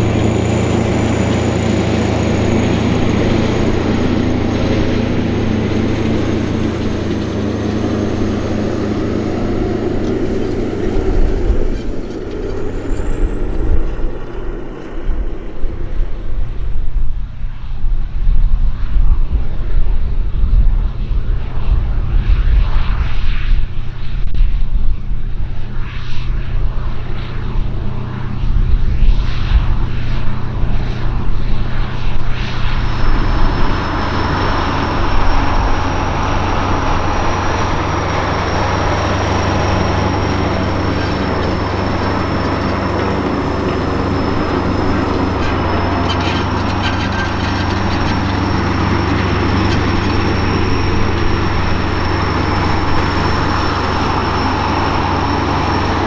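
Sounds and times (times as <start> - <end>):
tractor engine under load: 0.0 - 17.4, 29.7 - 56.0
diesel tractor engine: 0.0 - 18.1, 25.2 - 56.0.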